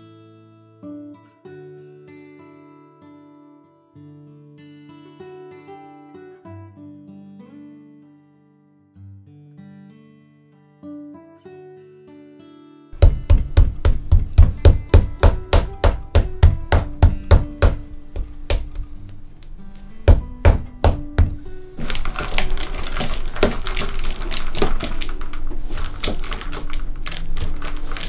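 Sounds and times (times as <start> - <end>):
soft acoustic guitar: 0.0 - 13.3, 14.2 - 23.4
knife chopping on wooden board: 13.0 - 19.0, 20.0 - 21.4.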